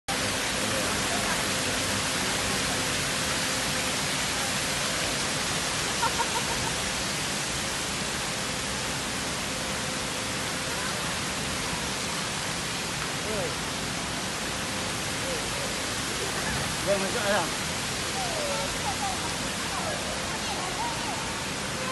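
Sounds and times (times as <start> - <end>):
fountain water splashing: 0.1 - 21.9.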